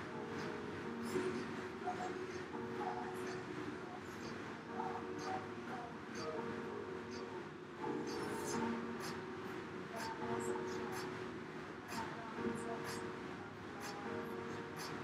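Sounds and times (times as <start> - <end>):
exercise bike fan whirring: 0.0 - 15.0.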